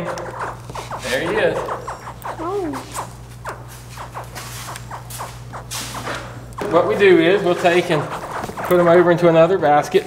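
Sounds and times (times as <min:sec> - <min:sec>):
steady low hum: 0:00.0 - 0:10.0
baby alligator chirp: 0:00.2 - 0:06.8.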